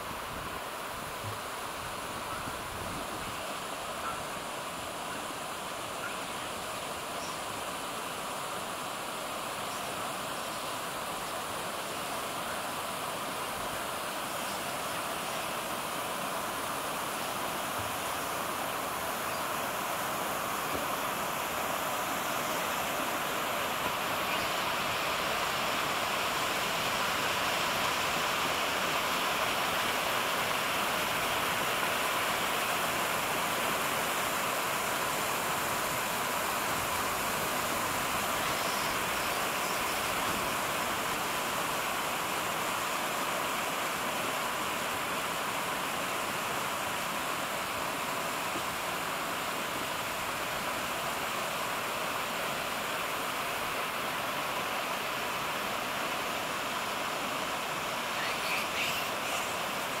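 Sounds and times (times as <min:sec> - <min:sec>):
stream rushing over rocks: 0:00.0 - 1:00.0.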